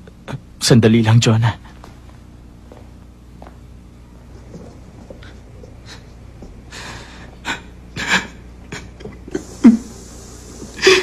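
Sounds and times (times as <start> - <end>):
person breathing: 6.7 - 7.7.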